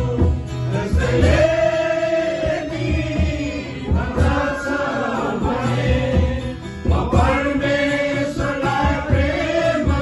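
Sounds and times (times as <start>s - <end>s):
group singing worship song: 0.0s - 10.0s
guitar: 0.0s - 10.0s
man's voice leading singing: 0.0s - 10.0s
steady low beat: 0.0s - 10.0s.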